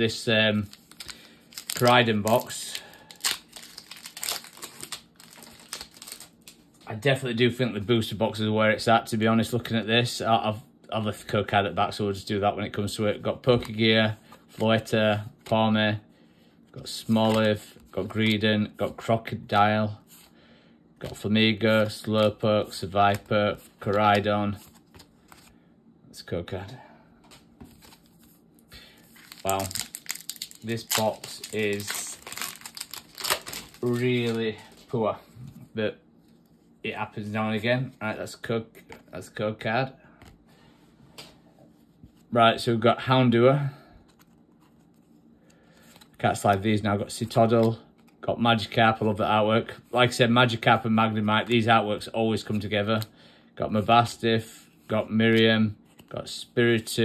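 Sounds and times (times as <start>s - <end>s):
trading cards flicking and rustling: 0.1s - 6.8s, 16.9s - 18.4s, 29.0s - 35.0s
foil wrapper crinkling: 0.5s - 6.7s, 29.0s - 34.8s.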